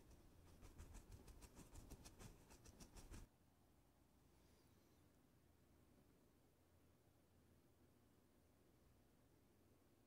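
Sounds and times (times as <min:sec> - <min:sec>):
dry brush scratching on canvas: 0:00.0 - 0:03.3.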